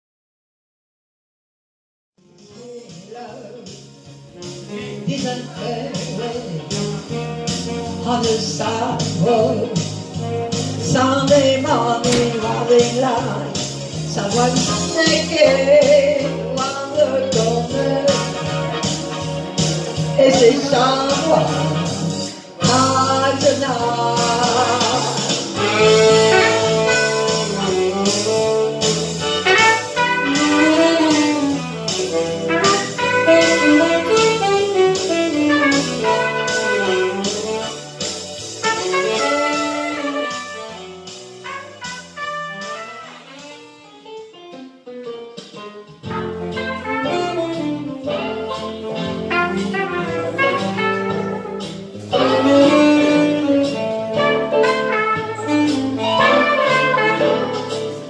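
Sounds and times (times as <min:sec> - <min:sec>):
saxophone: 0:02.2 - 0:58.0
trumpet: 0:04.3 - 0:44.3, 0:46.0 - 0:58.0
steady beat: 0:24.3 - 0:43.4.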